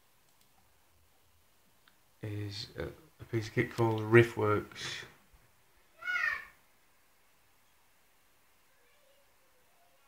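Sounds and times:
faint clicks: 0.2 - 0.7.

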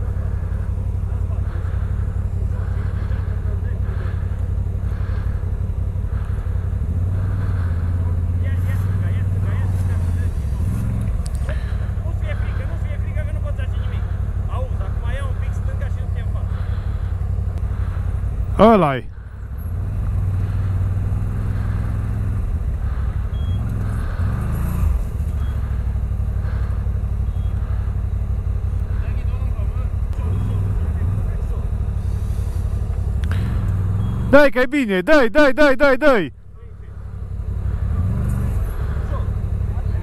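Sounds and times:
quad engine running: 0.0 - 35.0, 36.1 - 40.0.

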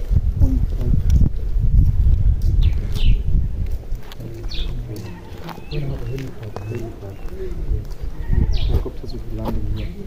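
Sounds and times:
low rumble on microphone: 0.0 - 10.0
faint voices: 3.8 - 10.0.

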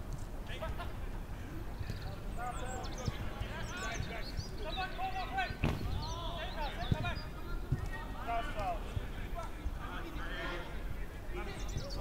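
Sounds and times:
players shouting: 2.3 - 12.0
ball being kicked: 5.6 - 6.1.

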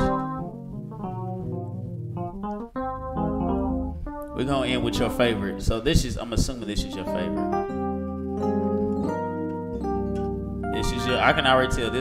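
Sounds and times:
electric piano gospel chords: 0.0 - 12.0.

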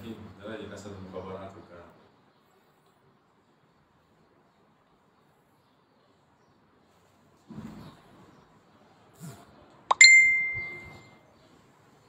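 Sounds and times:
bright ding: 9.9 - 11.1.

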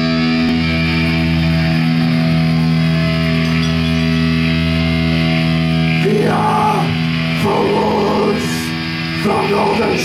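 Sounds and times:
distorted electric guitar chord: 0.0 - 10.0.

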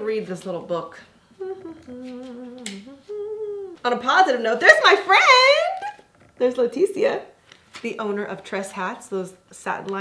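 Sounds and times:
woman humming: 1.4 - 3.9.

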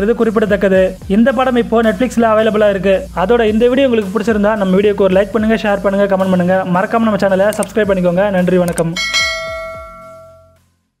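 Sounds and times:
bright notification chime: 9.0 - 10.6.

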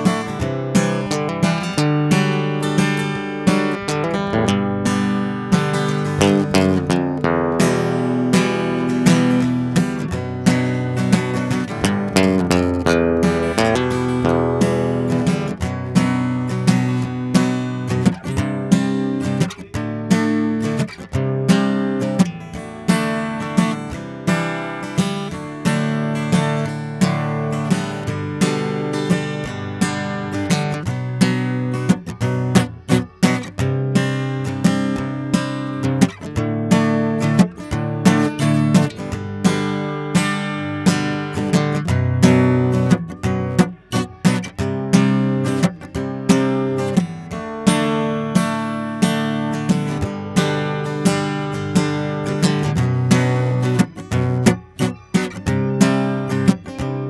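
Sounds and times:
acoustic guitar strumming chords: 0.0 - 57.0.

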